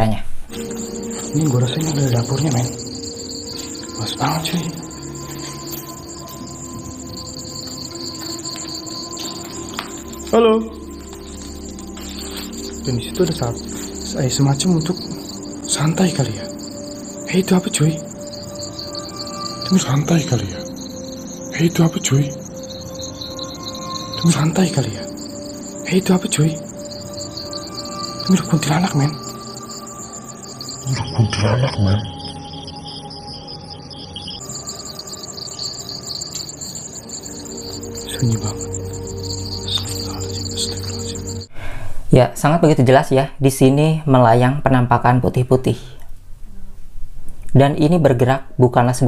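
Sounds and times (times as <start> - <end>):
crickets trilling: 0.5 - 41.5.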